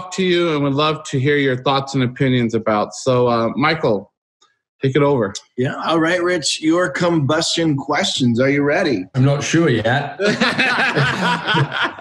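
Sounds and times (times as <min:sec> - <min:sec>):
men laughing: 0:09.5 - 0:12.0.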